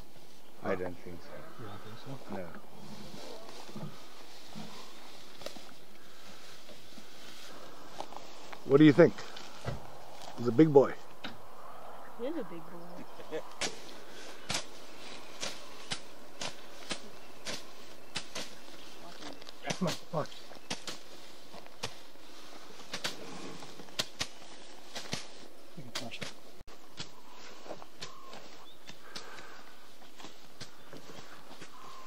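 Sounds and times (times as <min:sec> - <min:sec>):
footsteps through dry grass: 0:00.0 - 0:11.5, 0:12.3 - 0:32.0
background hiss: 0:00.0 - 0:32.0.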